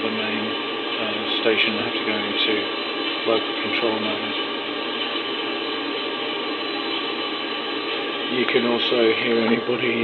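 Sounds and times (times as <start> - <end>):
loudspeaker hiss with faint hum: 0.0 - 10.0.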